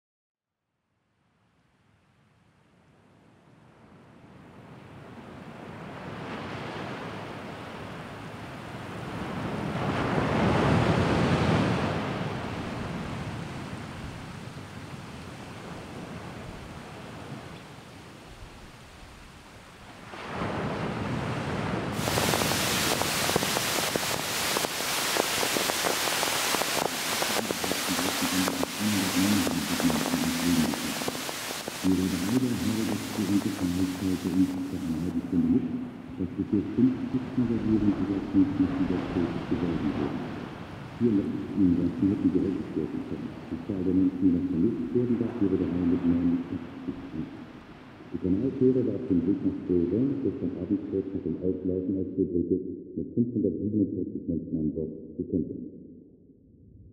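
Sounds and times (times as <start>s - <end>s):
rushing surf-like noise: 4.8s - 49.7s.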